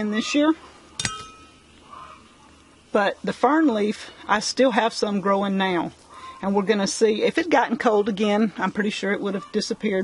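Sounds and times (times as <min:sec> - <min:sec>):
metal trowel dropped clanging: 0:01.0 - 0:01.5.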